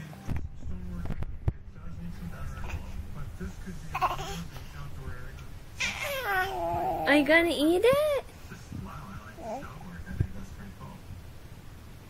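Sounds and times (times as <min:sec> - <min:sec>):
baby squealing: 0:05.8 - 0:07.1.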